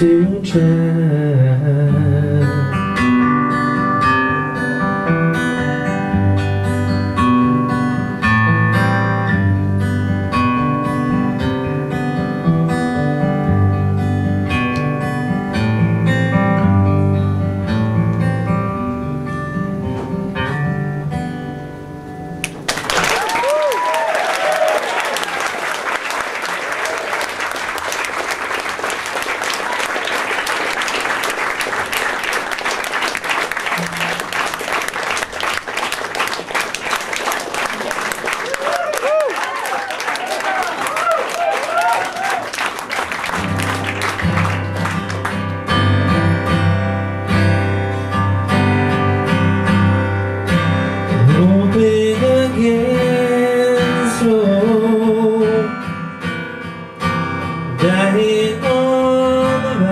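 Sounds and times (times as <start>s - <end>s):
acoustic guitar picking: 0.0s - 22.7s, 33.8s - 34.4s, 43.2s - 59.9s
audience applause: 22.4s - 45.6s
whistles and cheers: 22.9s - 25.9s, 38.3s - 42.8s.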